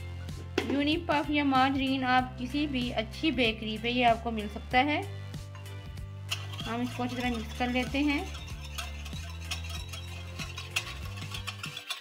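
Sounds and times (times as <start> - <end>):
whisk clicking in ceramic bowl: 6.3 - 12.0.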